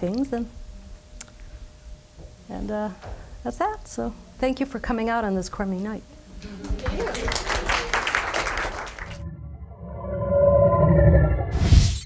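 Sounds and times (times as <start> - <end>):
audience applause: 6.4 - 9.2.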